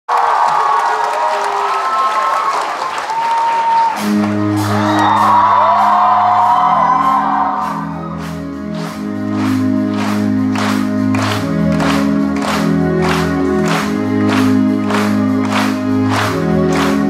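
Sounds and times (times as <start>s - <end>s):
crowd cheering and screaming: 0.1s - 8.3s.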